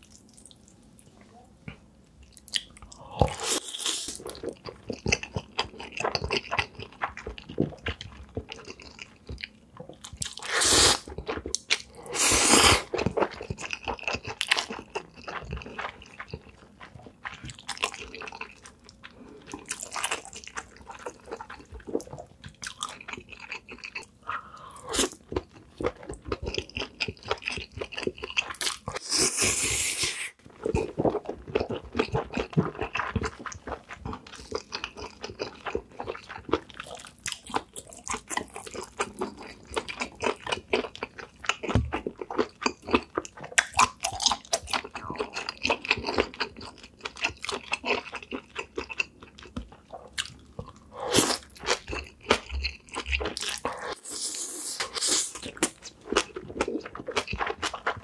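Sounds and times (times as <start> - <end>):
wet chewing and lip smacking: 12.8 - 29.0, 30.6 - 58.0.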